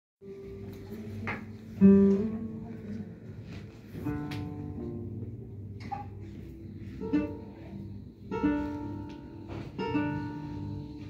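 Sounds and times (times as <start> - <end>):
classical guitar fingerstyle: 0.2 - 11.0.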